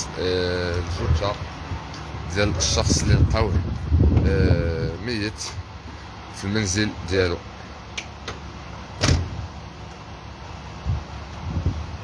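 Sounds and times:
vehicle idling: 0.0s - 12.0s
dull thump: 9.0s - 9.4s
loud thump: 9.0s - 9.4s.

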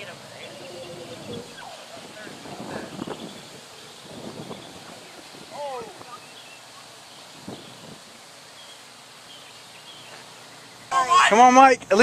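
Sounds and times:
faint distant voices: 0.0s - 12.0s
outdoor ambience: 0.0s - 12.0s.

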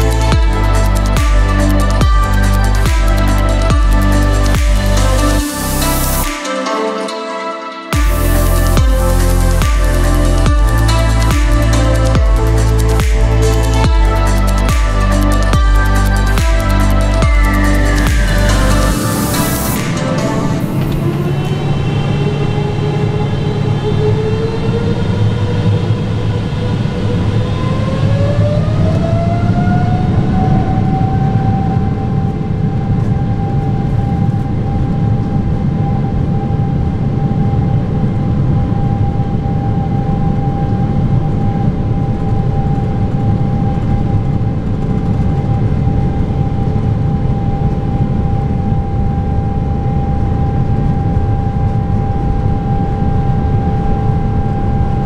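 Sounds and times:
jet engines whining: 7.8s - 55.0s
steady low rumble in cabin: 30.0s - 55.0s.

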